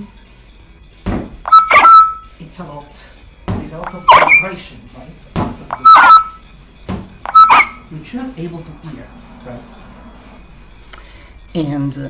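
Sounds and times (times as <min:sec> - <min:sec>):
held synthetic tone: 0:01.5 - 0:02.3, 0:03.9 - 0:04.6, 0:05.7 - 0:06.4, 0:07.3 - 0:07.8.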